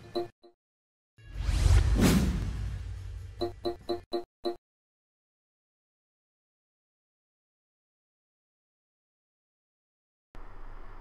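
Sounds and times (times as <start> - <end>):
whoosh sound effect: 1.2 - 3.4.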